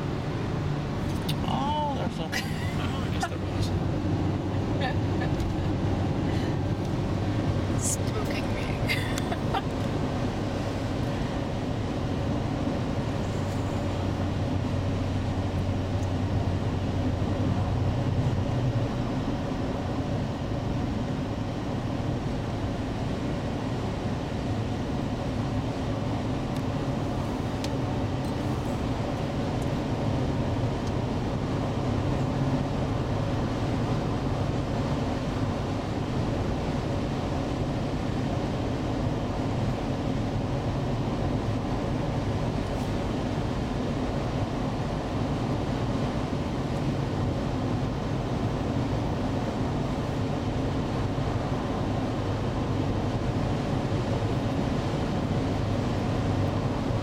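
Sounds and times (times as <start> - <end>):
car cabin road and engine noise: 0.0 - 57.0.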